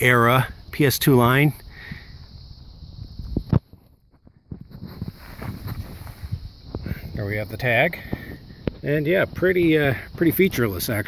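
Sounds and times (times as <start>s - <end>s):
footsteps on gravel: 4.6s - 6.7s.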